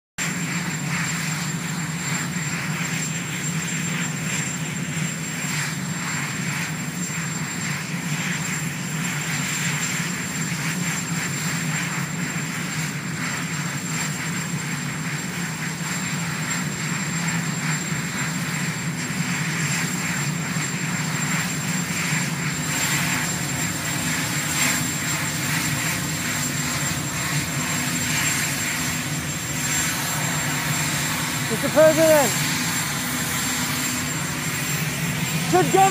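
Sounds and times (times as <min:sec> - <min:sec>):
helicopter turbines idling: 0:00.2 - 0:35.9.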